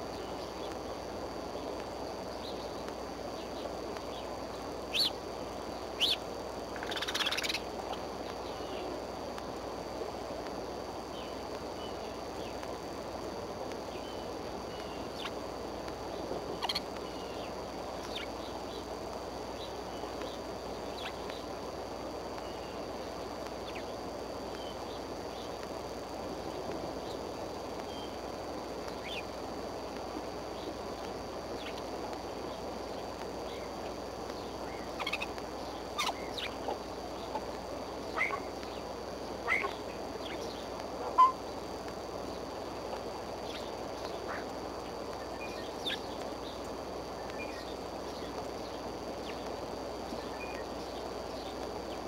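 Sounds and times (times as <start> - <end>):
microphone hiss: 0.0 - 52.0
thin high whine: 0.0 - 52.0
eagle high calls: 38.1 - 38.6, 39.4 - 41.5.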